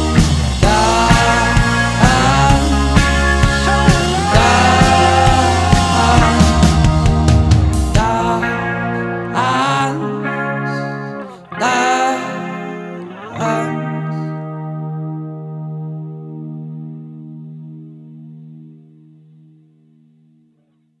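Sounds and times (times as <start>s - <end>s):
guitar chords ringing: 0.0s - 20.7s.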